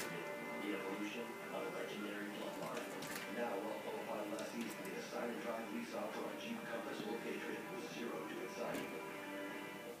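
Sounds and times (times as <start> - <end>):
background music: 0.0 - 10.0
indistinct television voices: 0.0 - 10.0.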